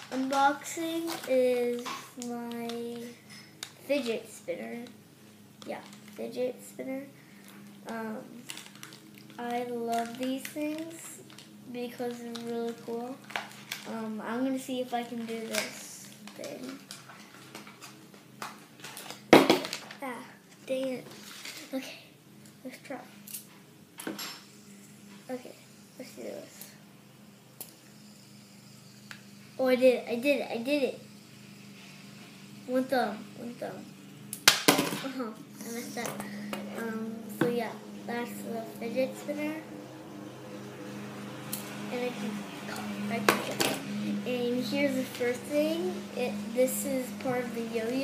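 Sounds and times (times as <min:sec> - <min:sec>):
fidget spinner knock and rattle: 0:00.0 - 0:05.0, 0:08.5 - 0:21.8, 0:34.4 - 0:39.6, 0:41.4 - 0:48.0
steady low hum: 0:00.0 - 0:48.0.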